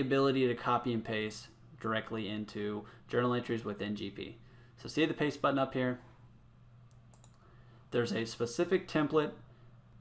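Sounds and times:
computer mouse clicks: 6.9 - 7.4.

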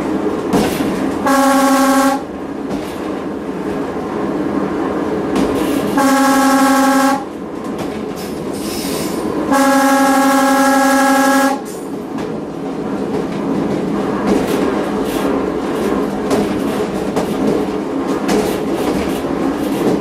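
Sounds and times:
train wheels on rails: 0.0 - 20.0
train horn blast: 1.2 - 2.3, 6.0 - 7.3, 9.5 - 11.7.

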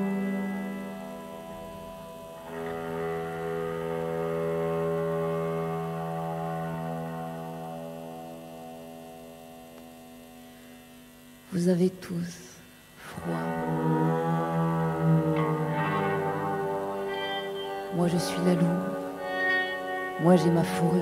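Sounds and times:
bowed electric guitar drone: 0.0 - 21.0
low bowed-string tones: 13.1 - 21.0.

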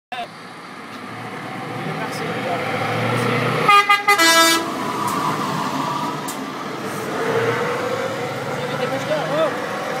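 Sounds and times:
truck engine rumble: 0.1 - 10.0
truck horn blasts: 3.6 - 4.7.

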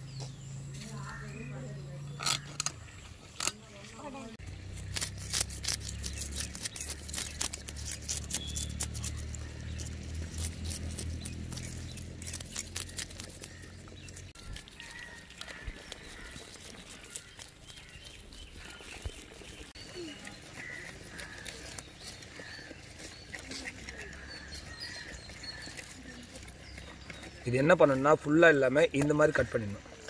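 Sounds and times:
birds chirping: 0.0 - 30.0
knife scraping fish scales: 2.2 - 3.9, 4.8 - 13.6.

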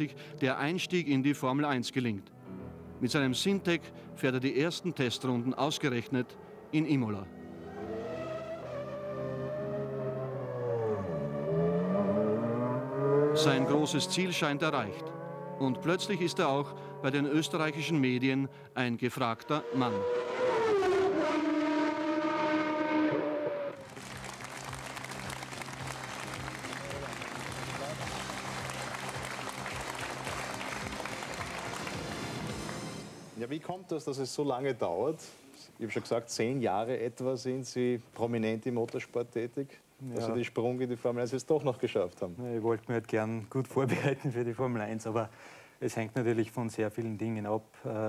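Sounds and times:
background music: 0.0 - 20.2, 23.7 - 34.1
audience applauding: 23.8 - 33.1.

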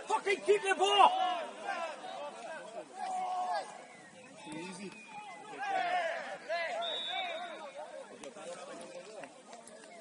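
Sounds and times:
high steady whistle tone: 6.7 - 7.6.

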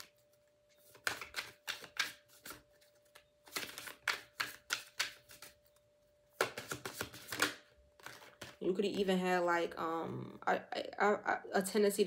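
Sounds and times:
cards being shuffled: 0.0 - 5.8, 6.4 - 8.6.

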